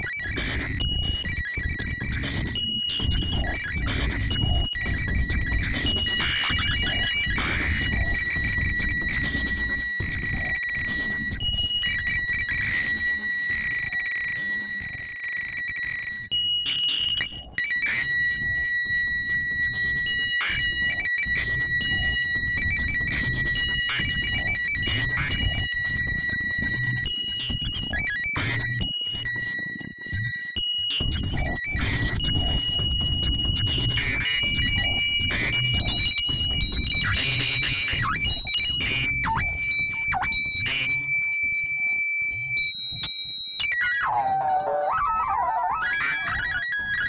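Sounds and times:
high whistling synth tone: 0:00.0 - 0:47.0.

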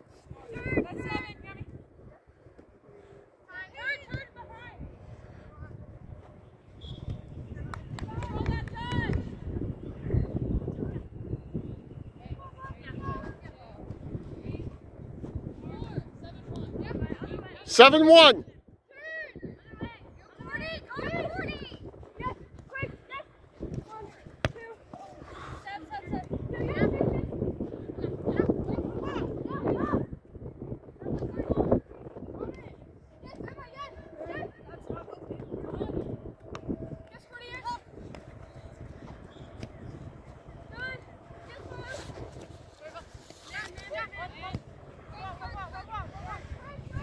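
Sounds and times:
low wind rumble: 0:03.8 - 0:24.4, 0:25.1 - 0:47.0
soccer ball kick thud: 0:23.7 - 0:25.0.

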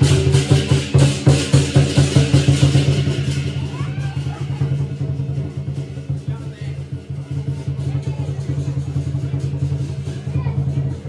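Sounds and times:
drum rumbling roll: 0:00.0 - 0:11.0
onlookers' voices: 0:00.0 - 0:11.0
faint cymbal strokes: 0:04.6 - 0:11.0.

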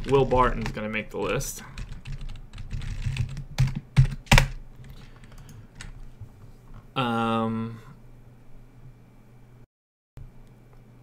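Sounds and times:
typing on computer keyboard: 0:00.0 - 0:04.6, 0:05.2 - 0:05.9.

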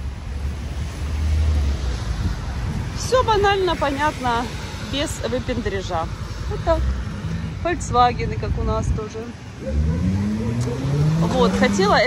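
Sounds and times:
car accelerating past: 0:09.6 - 0:12.0.

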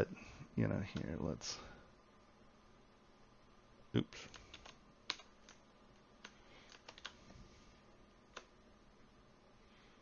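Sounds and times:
faint keyboard clicking: 0:00.9 - 0:01.2, 0:04.2 - 0:07.2, 0:08.3 - 0:08.6.

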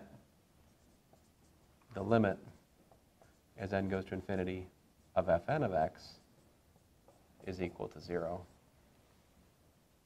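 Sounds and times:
marker writing on whiteboard: 0:00.6 - 0:08.7.

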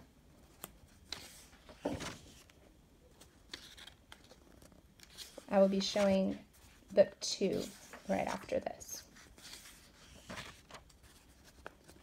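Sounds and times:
paper pages rustling: 0:00.4 - 0:12.0.

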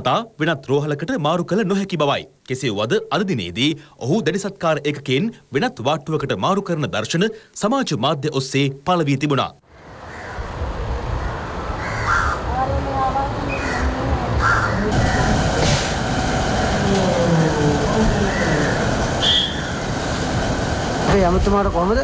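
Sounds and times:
steady background noise: 0:09.4 - 0:22.0
short sharp calls: 0:18.3 - 0:19.9.

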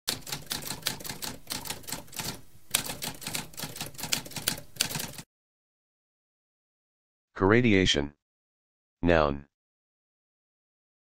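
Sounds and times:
typewriter keys clattering: 0:00.1 - 0:05.2.

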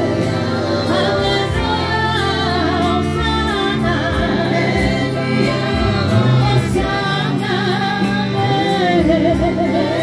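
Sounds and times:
group singing gospel song: 0:00.0 - 0:10.0
low bass accompaniment: 0:00.0 - 0:10.0.

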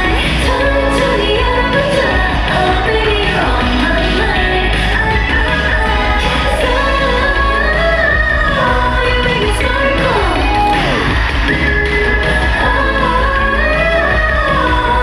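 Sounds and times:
woman singing into microphone: 0:00.0 - 0:11.2, 0:12.2 - 0:15.0
upbeat dance track: 0:00.0 - 0:15.0.

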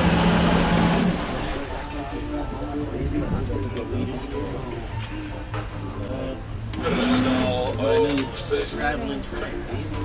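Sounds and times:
low boat engine hum: 0:00.0 - 0:04.1.

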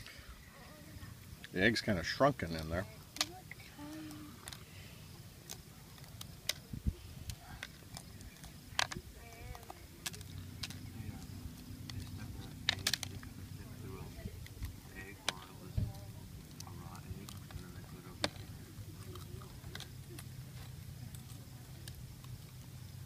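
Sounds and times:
faint low hum: 0:00.0 - 0:23.0
eggshell clicking and crackling: 0:02.4 - 0:13.8, 0:14.4 - 0:23.0.

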